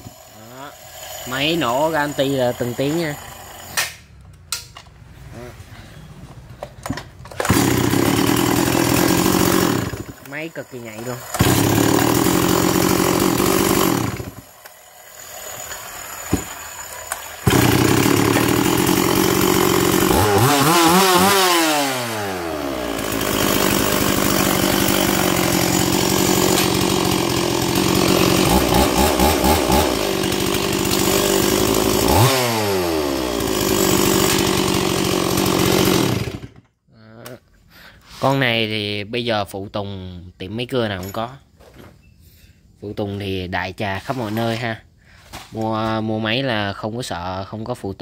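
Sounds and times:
chainsaw engine revving and idling: 0.0 - 3.9, 7.4 - 36.6.

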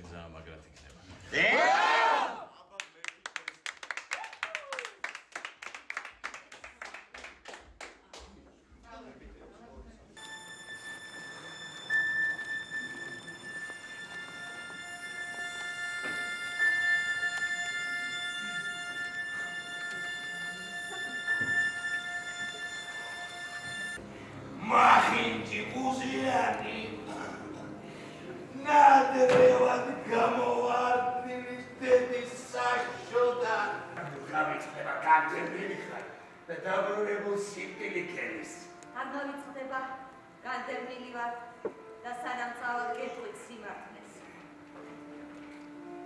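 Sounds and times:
group clapping in rhythm: 2.8 - 8.6
music of long held notes: 10.2 - 34.0, 43.8 - 46.0.

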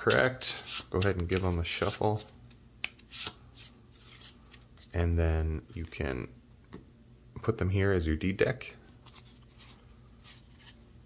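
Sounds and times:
cards rustling and scuffing: 0.0 - 5.0, 8.9 - 11.0.

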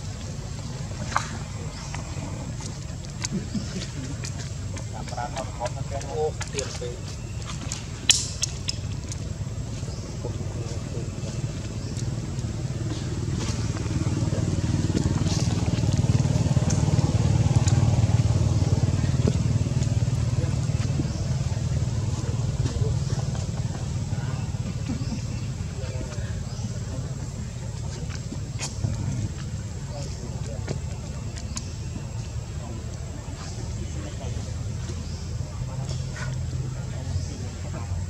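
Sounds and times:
vehicle engine passing: 0.2 - 38.0.

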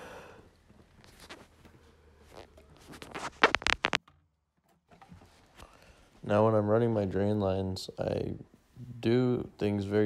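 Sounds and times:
handling noise: 0.6 - 5.6.

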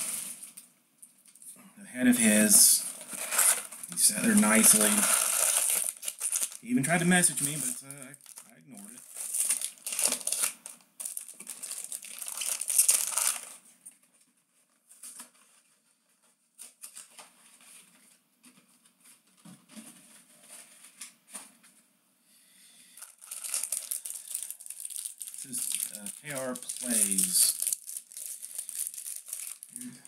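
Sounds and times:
foil packs crinkling: 2.2 - 13.6, 23.0 - 30.0.

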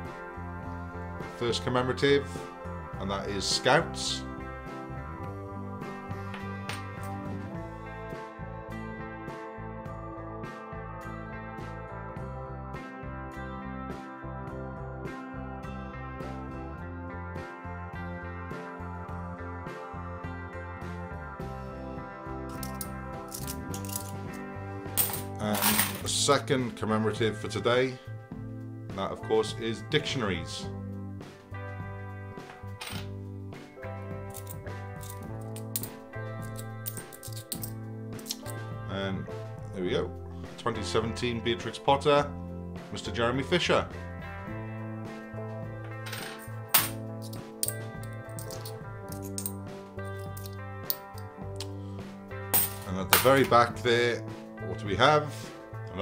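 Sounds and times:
background music: 0.0 - 56.0
coins clinking: 22.5 - 26.1, 32.5 - 33.2, 34.2 - 38.6, 45.8 - 51.3, 52.5 - 53.5.

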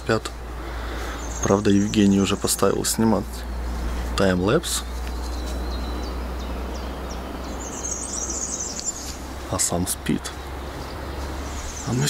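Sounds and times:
birds chirping: 0.0 - 12.0
birds twittering: 0.0 - 12.0.

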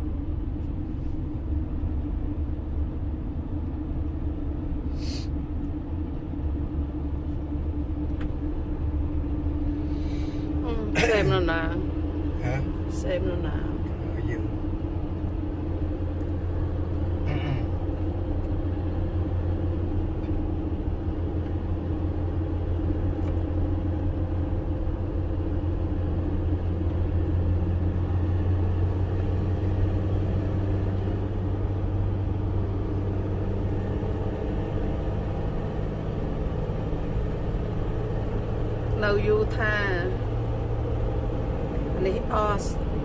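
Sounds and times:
car engine drone: 0.0 - 43.0
tyres on road: 0.0 - 43.0.

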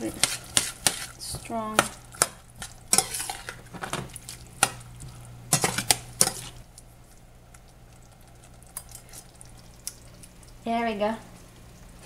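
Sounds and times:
metal spoon scraping saucepan: 2.9 - 3.6.

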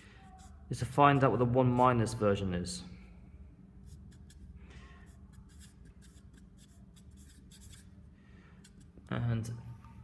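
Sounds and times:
marker pen scratching on paper: 3.8 - 8.0.

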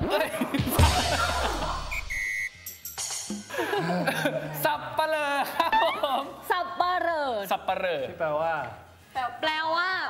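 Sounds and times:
high beep: 1.8 - 2.6.

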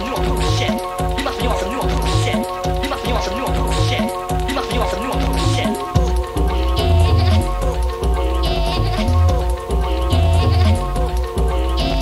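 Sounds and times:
busy synth line: 0.0 - 12.0
heavy bass notes: 0.0 - 12.0
rave dance music: 0.0 - 12.0.

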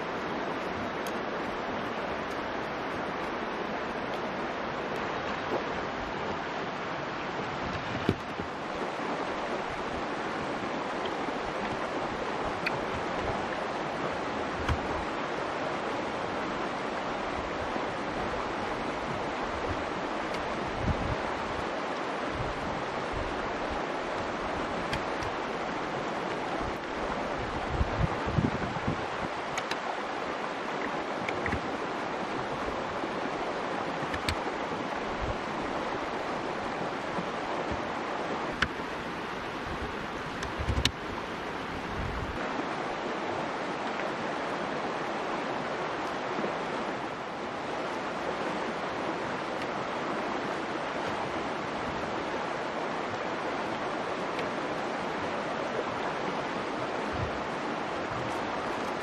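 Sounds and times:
river rushing: 0.0 - 59.0.

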